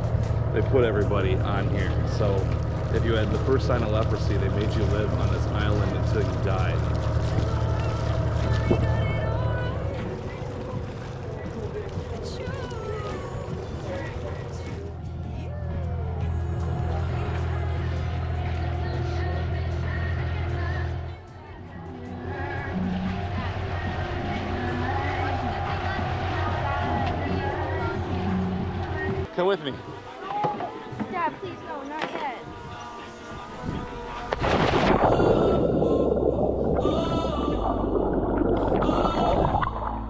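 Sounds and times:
underwater bubbles and churning water: 0:00.0 - 0:14.8, 0:34.2 - 0:40.0
boat engine drone: 0:00.0 - 0:40.0
swimmer splashing into water: 0:34.1 - 0:40.0.

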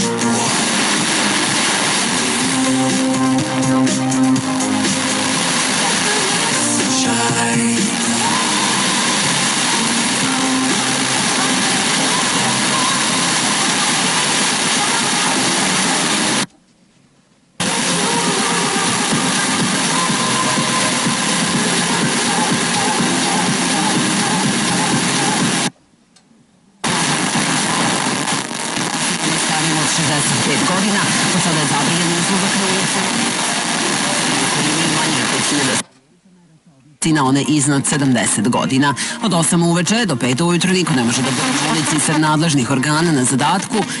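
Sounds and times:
radio static hissing: 0:00.0 - 0:16.5, 0:17.6 - 0:25.8, 0:26.8 - 0:44.0
faint radio music: 0:00.0 - 0:44.0
faint radio speech: 0:29.2 - 0:44.0.

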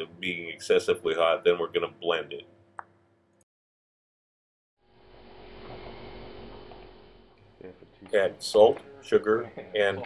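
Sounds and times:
low hum and hiss: 0:00.0 - 0:03.3, 0:04.8 - 0:10.0.

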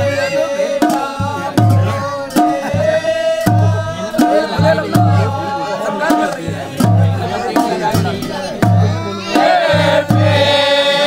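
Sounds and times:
group of men singing: 0:00.0 - 0:11.0
deep drum struck with stick: 0:00.8 - 0:05.5, 0:06.1 - 0:10.5.

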